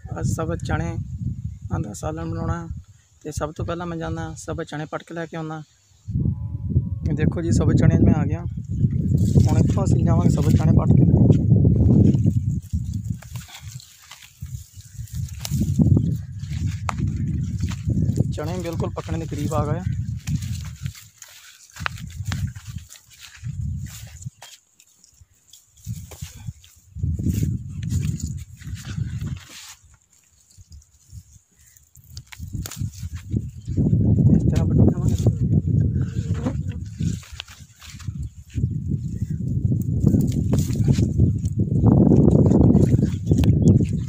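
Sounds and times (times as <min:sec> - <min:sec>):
wind buffeting microphone: 0:00.0 - 0:04.7, 0:06.0 - 0:44.0
plants rustling being pulled up: 0:09.1 - 0:44.0.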